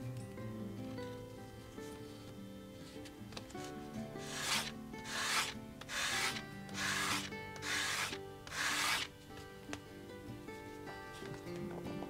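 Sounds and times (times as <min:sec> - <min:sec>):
leather rasping on sandpaper: 0:04.2 - 0:09.1.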